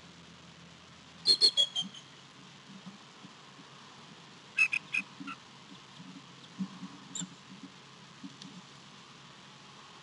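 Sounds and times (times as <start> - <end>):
eagle peeping: 1.3 - 2.2, 4.6 - 5.4.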